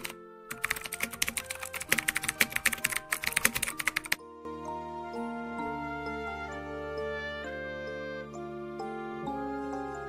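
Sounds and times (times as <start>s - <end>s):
keyboard key clicks: 0.0s - 4.2s
background music with held notes: 0.0s - 10.0s.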